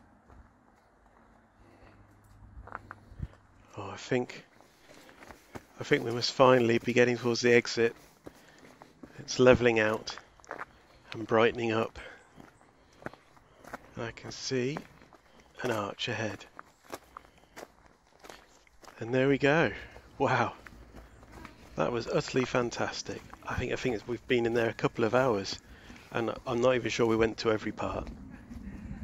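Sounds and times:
faint low rumble: 0:00.0 - 0:07.6, 0:18.8 - 0:29.0
footsteps on dry leaves: 0:16.4 - 0:19.0.

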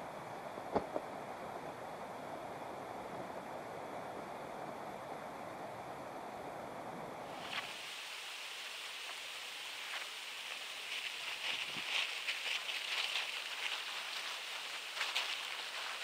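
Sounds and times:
faint steady hiss: 0:00.0 - 0:16.0
nylon tent fabric rustling: 0:07.4 - 0:16.0.

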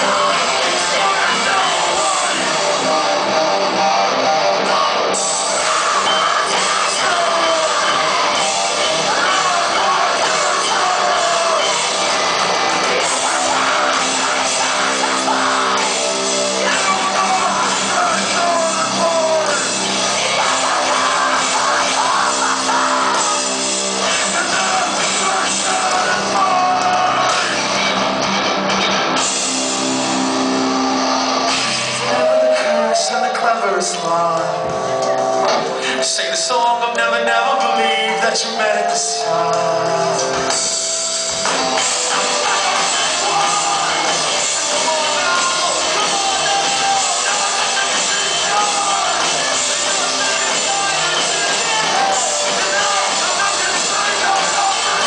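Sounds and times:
drum kit: 0:00.0 - 0:33.0, 0:39.2 - 0:55.0
electric guitars sustained chords: 0:00.0 - 0:55.0
rock band playing live: 0:00.0 - 0:55.0.

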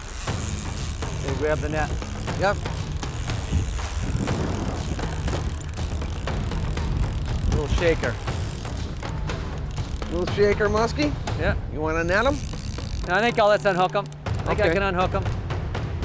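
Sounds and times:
fishing reel cranking: 0:00.0 - 0:11.2, 0:12.0 - 0:14.6
outboard motor humming: 0:00.0 - 0:15.2
wind buffeting microphone: 0:01.4 - 0:09.5.

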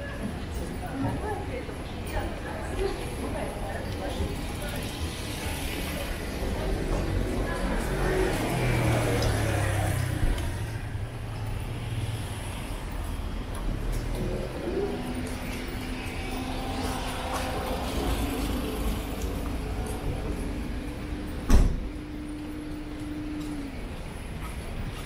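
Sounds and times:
car engines passing: 0:02.5 - 0:25.0.

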